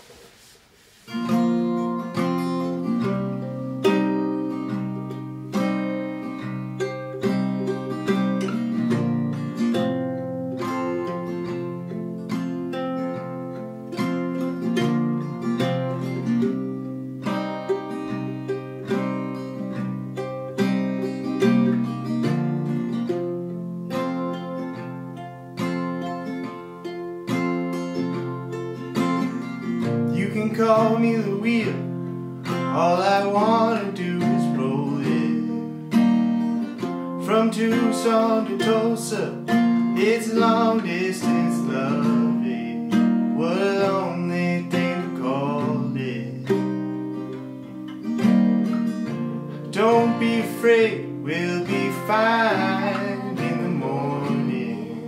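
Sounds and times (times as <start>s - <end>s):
acoustic guitars playing folk: 0.0s - 55.0s.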